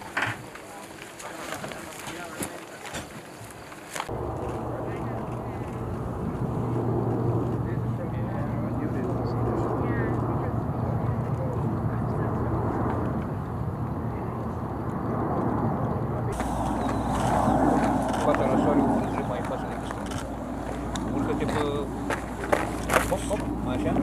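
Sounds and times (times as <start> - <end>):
aircraft engines droning overhead: 0.0 - 24.0
wind-like noise: 3.0 - 24.0.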